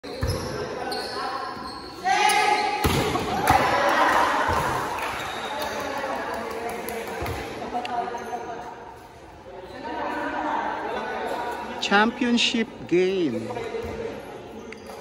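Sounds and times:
players' voices: 0.1 - 15.0
volleyball thumping on court floor: 2.8 - 5.0.

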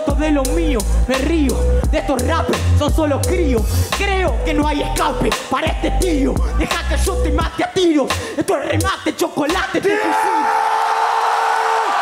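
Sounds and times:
crowd cheering and yelling: 0.0 - 3.7, 9.8 - 12.0
long held shout: 9.8 - 12.0.

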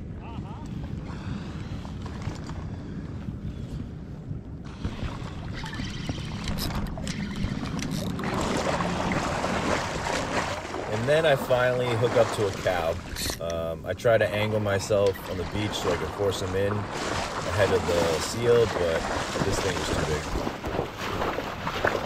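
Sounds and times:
wind rumbling on microphone: 0.0 - 22.0.

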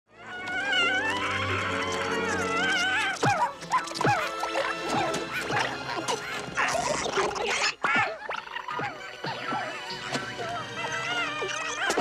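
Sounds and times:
orchestral score: 0.1 - 7.6, 8.8 - 12.0
creature whimpering cries: 0.1 - 12.0
sharp falling yelps: 0.2 - 12.0.

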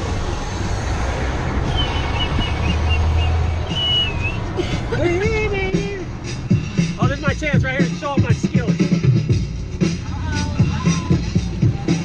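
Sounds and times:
road and wind noise: 0.0 - 12.0
high whistling tones: 1.7 - 4.5.

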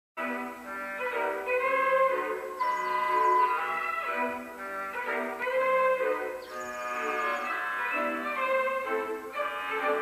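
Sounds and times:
orchestral music: 0.2 - 10.0.

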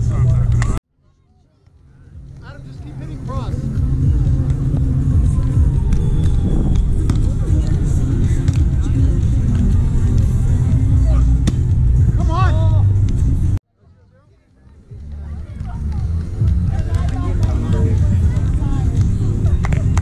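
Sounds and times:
faint voices: 0.0 - 13.1, 13.7 - 20.0
wind buffeting microphone: 3.7 - 11.2
volleyball hit: 5.7 - 10.3, 11.4 - 11.8.

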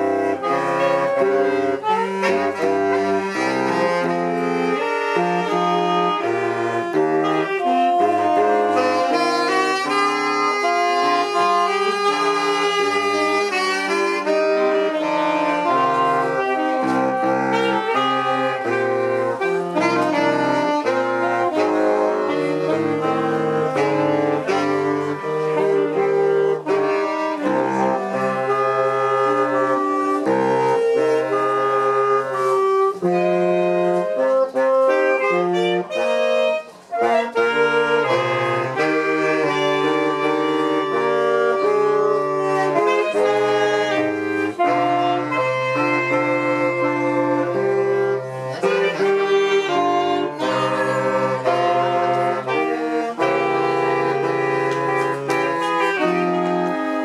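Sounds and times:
saxophone quartet playing: 0.0 - 57.0.

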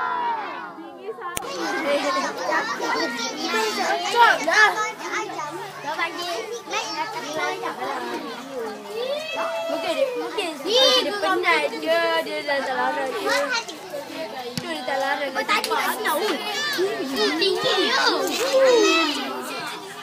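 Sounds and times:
children shouting: 0.0 - 11.8, 15.4 - 20.0.

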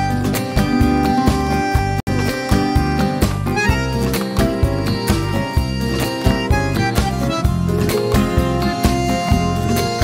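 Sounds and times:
acoustic guitar strumming: 0.0 - 10.0
held melody line: 0.0 - 10.0.

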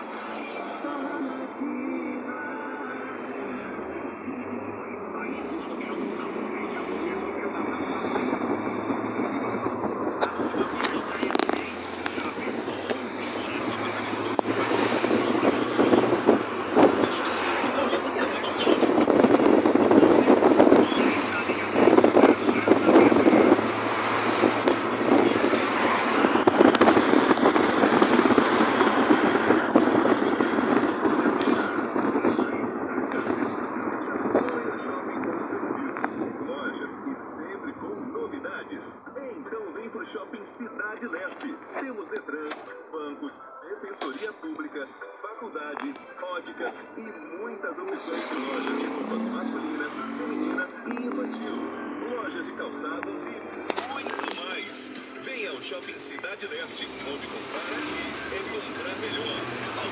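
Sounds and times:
road and engine noise in car: 0.0 - 59.9.

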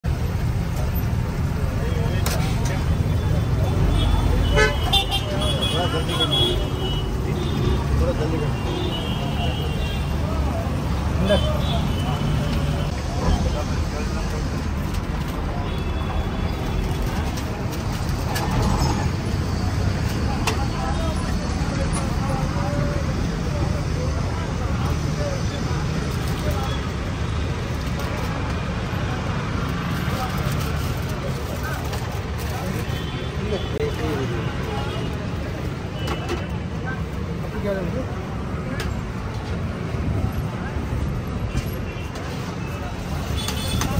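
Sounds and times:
traffic rumble: 0.0 - 43.9
people's voices: 0.1 - 43.9
vehicle horns tooting: 3.7 - 10.1.

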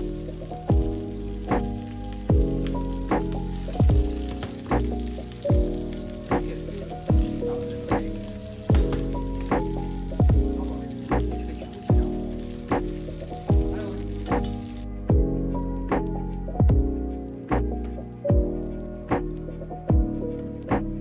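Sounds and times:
chopsticks stirring: 0.0 - 15.0
food sizzling in a pan: 0.0 - 15.1
instrumental background music: 0.0 - 21.0.

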